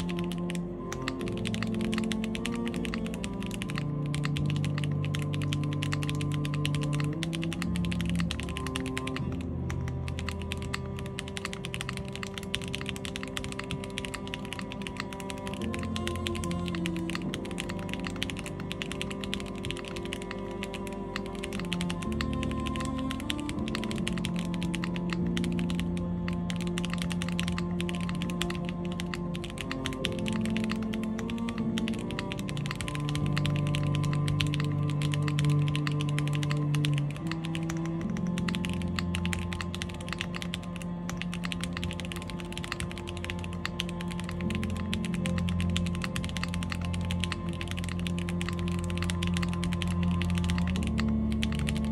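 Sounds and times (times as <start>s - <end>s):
background music with low notes: 0.0s - 51.9s
mechanical keyboard typing: 0.0s - 51.9s.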